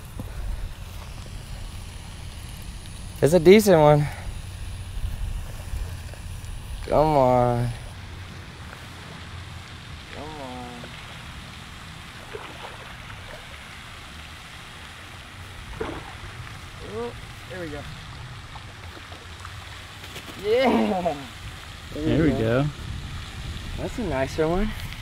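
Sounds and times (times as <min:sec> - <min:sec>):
wind rumbling on microphone: 0:00.0 - 0:14.4, 0:15.0 - 0:25.0.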